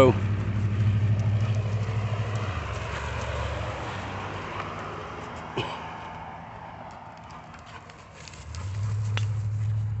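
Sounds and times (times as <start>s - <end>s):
car engine running: 0.0s - 4.1s, 8.3s - 10.0s.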